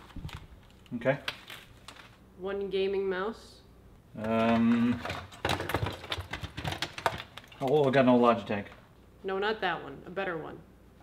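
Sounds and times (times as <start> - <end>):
plastic computer gear clattering: 4.2 - 8.3.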